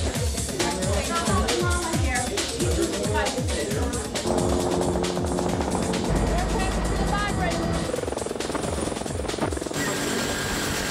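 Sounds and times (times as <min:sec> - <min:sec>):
voices: 0:00.0 - 0:08.2
helicopter rotor chopping: 0:00.6 - 0:10.9
soundtrack music: 0:04.2 - 0:08.8
deep low rumble: 0:04.2 - 0:08.9.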